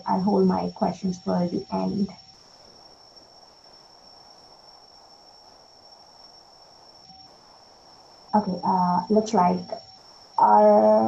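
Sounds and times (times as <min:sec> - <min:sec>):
faint steady hiss: 0:00.0 - 0:11.0
high-pitched whine: 0:00.0 - 0:11.0.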